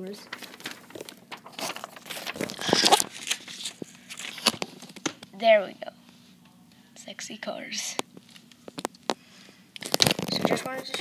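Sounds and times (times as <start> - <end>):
paper rustling and crinkling: 0.0 - 5.3, 9.8 - 11.0.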